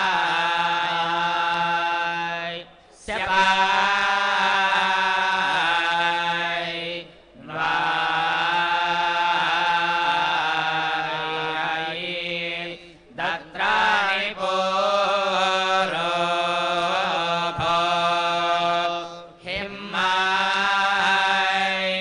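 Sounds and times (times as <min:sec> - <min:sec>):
priests chanting: 0:00.0 - 0:22.0.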